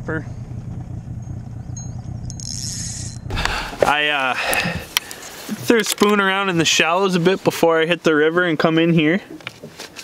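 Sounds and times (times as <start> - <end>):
wind noise on microphone: 0.0 - 5.0
outboard motor running: 0.0 - 5.5
man speaking: 3.8 - 4.7, 5.5 - 9.3.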